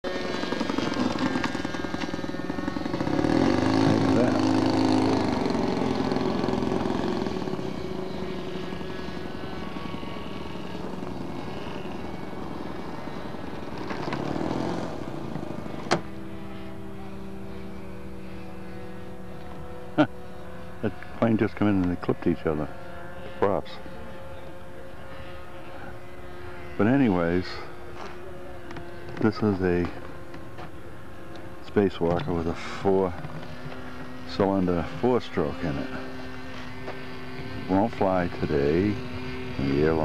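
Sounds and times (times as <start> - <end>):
model airplane engines running: 0.0 - 40.0.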